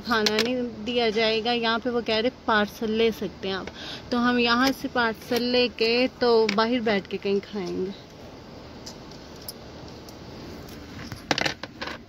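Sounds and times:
sharp clicks and rattles: 0.0 - 0.6, 8.8 - 12.0.

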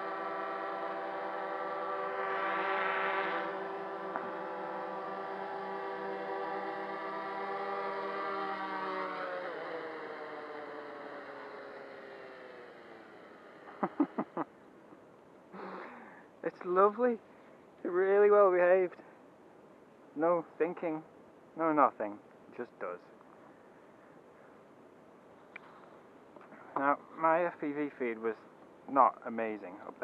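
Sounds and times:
drone motors whining: 6.0 - 14.4.

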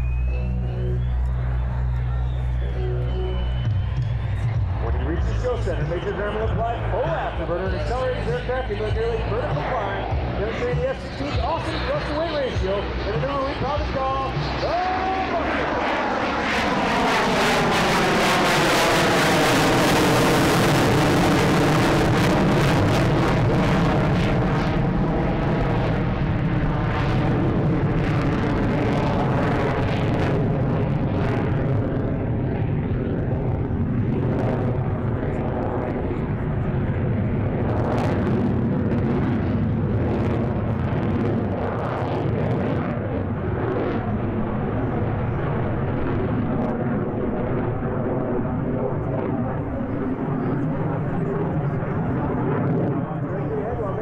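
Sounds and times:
jet engine roaring: 0.0 - 54.0.

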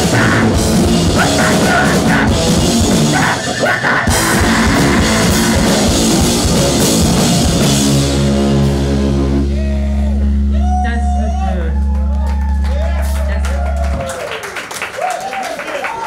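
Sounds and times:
pounding drums: 0.0 - 10.5
distorted guitar: 0.0 - 13.9
low bass note: 4.4 - 14.0.

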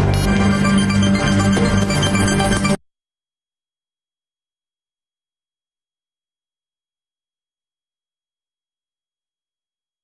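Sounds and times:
electronic news sting: 0.0 - 2.8.

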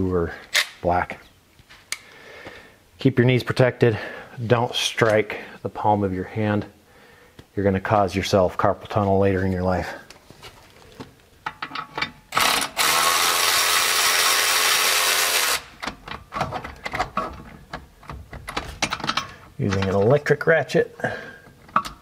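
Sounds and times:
electric ratchet running: 12.3 - 15.7.

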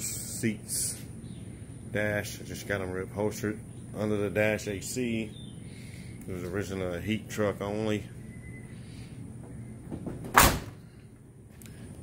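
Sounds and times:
truck door slamming: 10.0 - 10.8.

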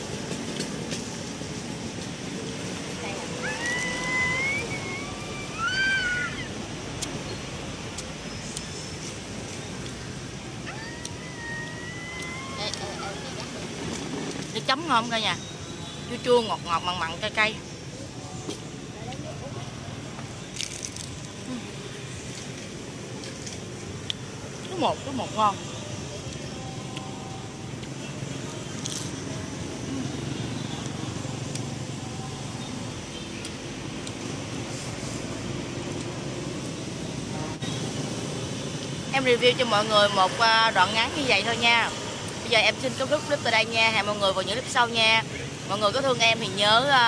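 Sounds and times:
steady background noise: 0.0 - 47.0
crunching rice paper: 20.5 - 21.5.

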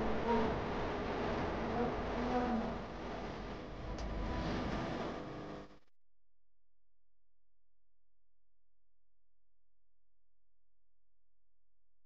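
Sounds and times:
steady background hum: 0.0 - 5.8.

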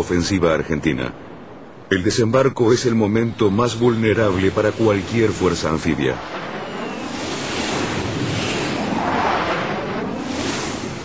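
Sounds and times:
wind: 0.0 - 11.0
sea waves washing: 2.9 - 11.0.

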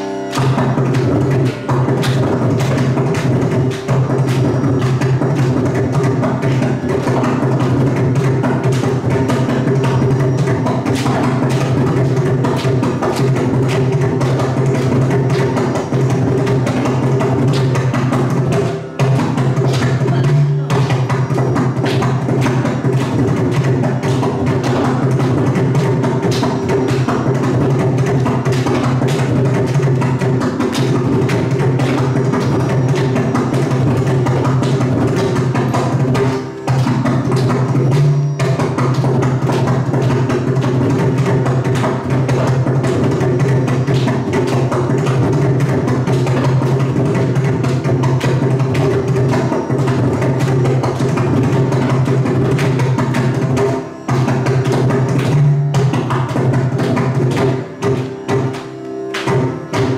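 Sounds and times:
mridangam drum strokes: 0.0 - 59.9.

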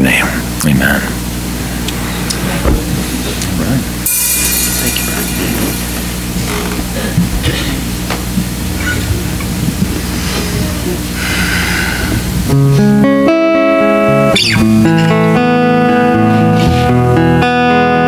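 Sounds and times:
guitars strumming: 2.0 - 10.1, 12.4 - 18.0
low sustained amplified tones: 4.0 - 9.9.

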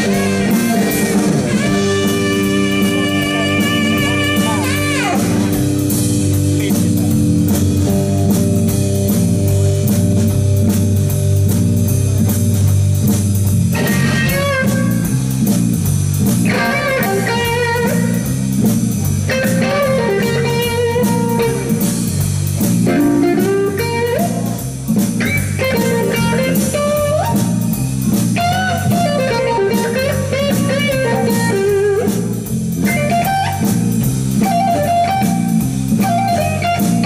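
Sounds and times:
saxophone phrase: 0.0 - 7.3
blues rock band playing: 0.0 - 37.0
electric guitar lead with bends: 0.0 - 37.0.

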